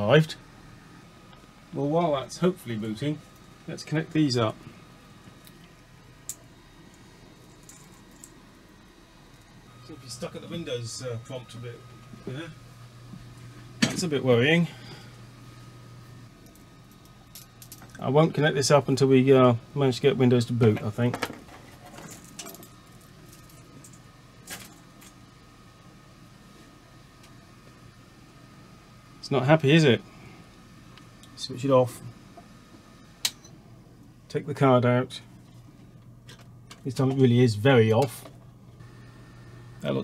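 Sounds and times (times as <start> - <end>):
faint steady hum: 0.0 - 40.0
cables clinking and rustling: 7.4 - 8.4, 20.8 - 25.2.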